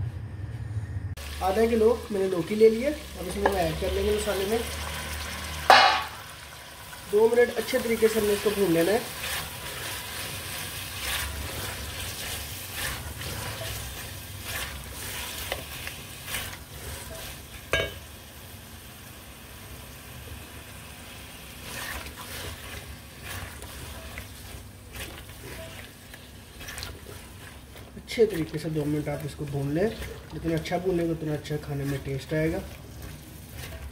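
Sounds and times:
food sizzling in a pot: 0:01.2 - 0:33.9
spatula scraping and knocking pot: 0:09.2 - 0:18.1, 0:21.6 - 0:33.9.

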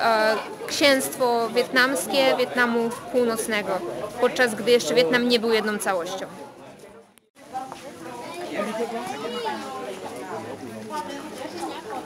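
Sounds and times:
people talking: 0:00.0 - 0:06.4, 0:07.4 - 0:12.0.

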